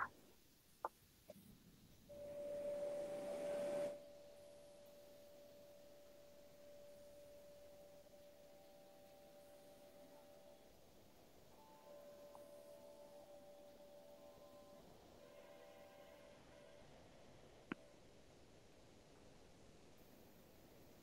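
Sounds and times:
steady pure tone: 0:02.0 - 0:18.0.

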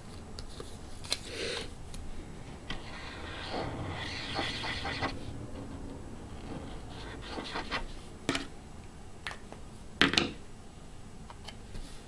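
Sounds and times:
pen tip rubbing on cardstock: 0:02.8 - 0:05.2.

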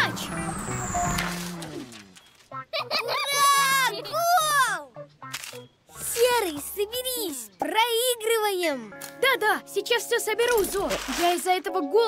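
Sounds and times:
cartoon character talking: 0:03.0 - 0:04.9.

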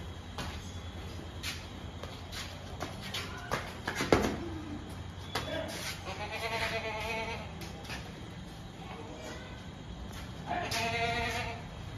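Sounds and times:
goat bleating: 0:06.0 - 0:07.5, 0:10.4 - 0:11.7.

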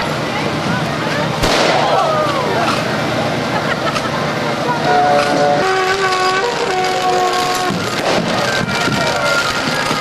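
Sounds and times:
street noise: 0:00.0 - 0:10.0
voices: 0:00.0 - 0:10.0
horn playing a melody: 0:04.8 - 0:08.1.

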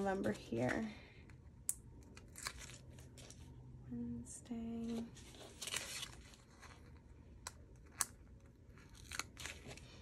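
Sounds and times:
paper crackle: 0:04.9 - 0:07.1, 0:08.5 - 0:10.0.

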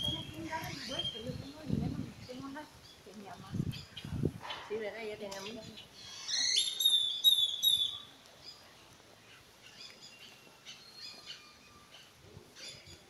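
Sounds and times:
bird whistled call: 0:00.0 - 0:01.5, 0:06.0 - 0:08.1
faint bird chirps: 0:05.4 - 0:13.0.

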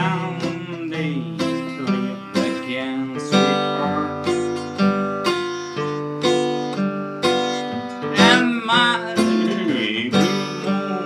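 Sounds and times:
acoustic guitar playing: 0:00.0 - 0:11.0.

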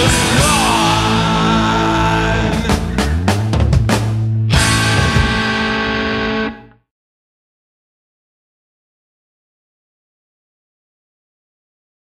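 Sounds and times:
distorted electric guitar and bass: 0:00.0 - 0:06.9
drum hit: 0:02.4 - 0:06.1.

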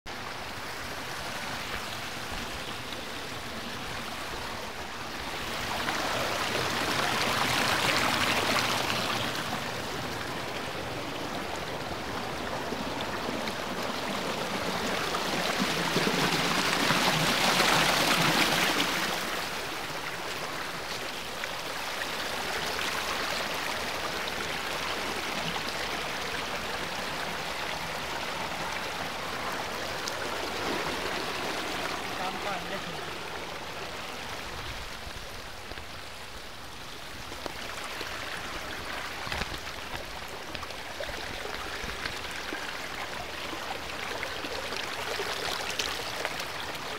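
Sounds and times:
stream spilling over rocks: 0:00.1 - 0:46.9.

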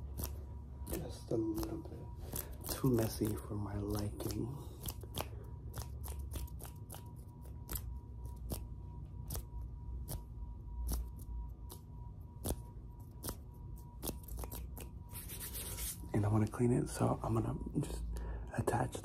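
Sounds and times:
hands rubbing near microphone: 0:15.1 - 0:16.1.

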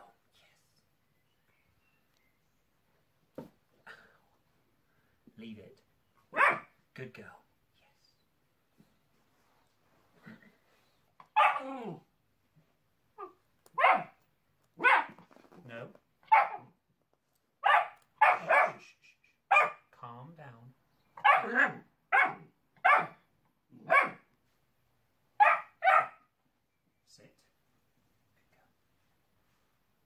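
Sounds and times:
puppy barking: 0:06.3 - 0:06.8, 0:11.3 - 0:11.8, 0:13.2 - 0:14.2, 0:14.8 - 0:15.2, 0:16.2 - 0:16.7, 0:17.6 - 0:18.8, 0:19.5 - 0:19.9, 0:21.2 - 0:24.3, 0:25.4 - 0:26.3.

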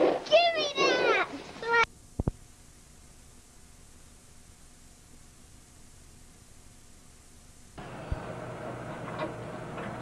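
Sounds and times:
videotape hiss: 0:00.0 - 0:10.0.

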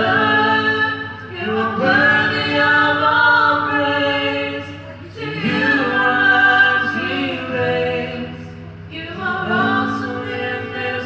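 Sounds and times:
group singing worship song: 0:00.0 - 0:11.0.

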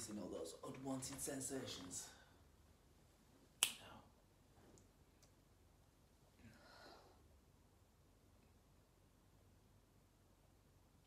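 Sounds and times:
finger snap: 0:03.6 - 0:03.9.

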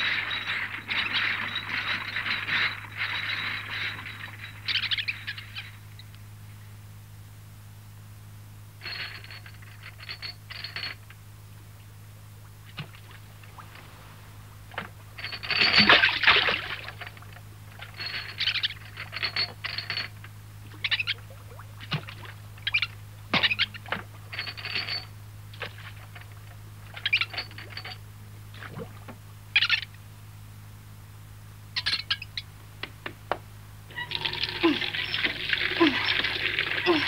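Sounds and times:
faint steady hum: 0:00.0 - 0:37.0.

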